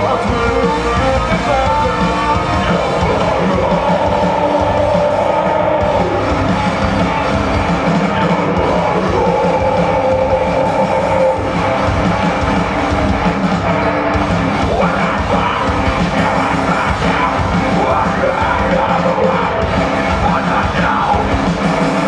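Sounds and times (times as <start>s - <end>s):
bass: 0.0s - 22.0s
drums: 0.0s - 22.0s
electric guitars: 0.0s - 22.0s
singer's voice: 0.0s - 22.0s.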